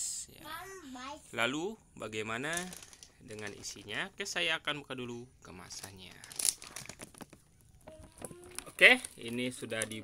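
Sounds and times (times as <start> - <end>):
packaging crinkling: 2.5 - 3.7, 5.7 - 10.0
snack pouch ripping: 6.1 - 7.1.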